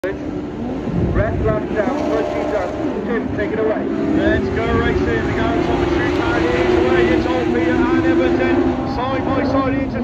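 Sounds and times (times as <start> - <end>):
man talking: 1.0 - 10.0.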